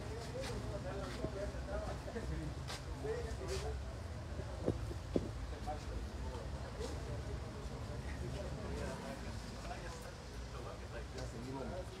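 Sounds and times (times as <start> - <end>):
men talking indistinctly: 0.0 - 12.0.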